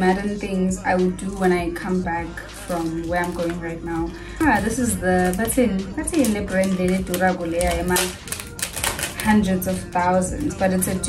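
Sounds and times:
packet clicks and crinkles: 2.5 - 3.6, 4.5 - 10.6.

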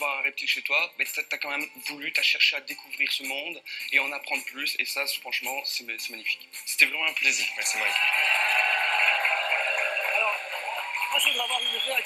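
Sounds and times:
audience applauding: 7.5 - 12.0.

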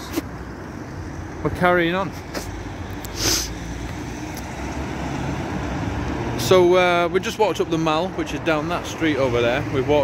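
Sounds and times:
cars driving along street: 0.0 - 10.0
short hiss: 3.1 - 3.6.

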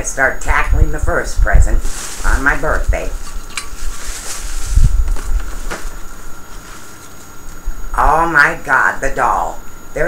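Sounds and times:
tissue paper rustling: 1.7 - 7.7.

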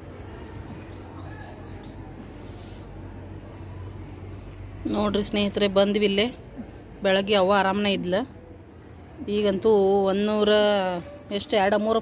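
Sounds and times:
small birds chirping: 0.0 - 2.9.

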